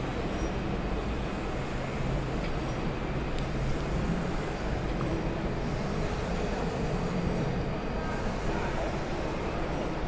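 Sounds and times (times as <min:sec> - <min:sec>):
large printer running: 0:00.0 - 0:10.0.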